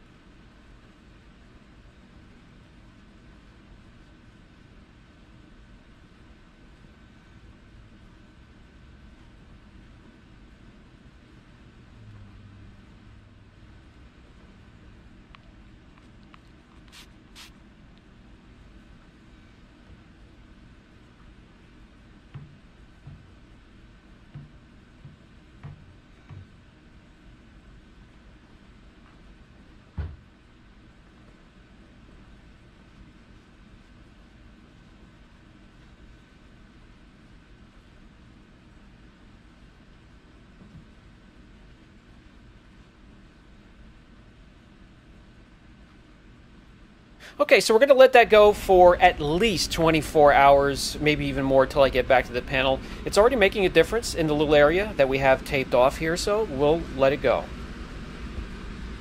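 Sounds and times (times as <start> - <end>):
faint steady hum: 0.0 - 59.0
soft knocks: 22.3 - 23.3, 24.3 - 26.6.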